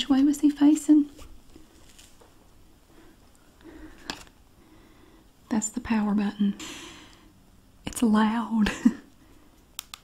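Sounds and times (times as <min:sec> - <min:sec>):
paper sheet rustling: 0:01.0 - 0:02.4
plastic toy handling: 0:03.9 - 0:04.4.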